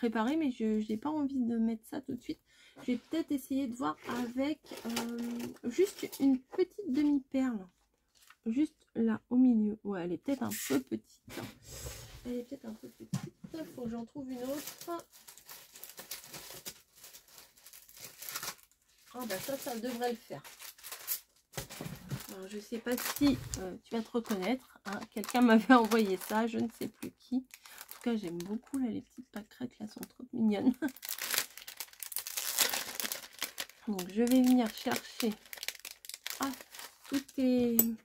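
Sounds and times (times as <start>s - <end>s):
plastic sleeve crinkling: 4.0s - 6.2s, 14.3s - 29.0s, 30.0s - 37.9s.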